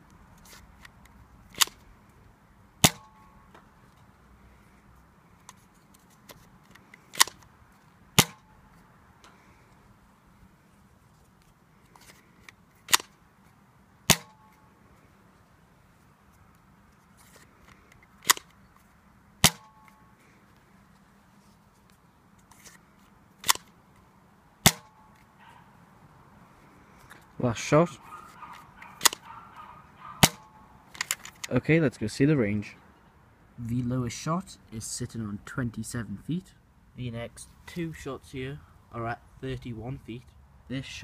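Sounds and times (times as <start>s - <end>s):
dart blaster firing snap: 30.2s - 30.4s.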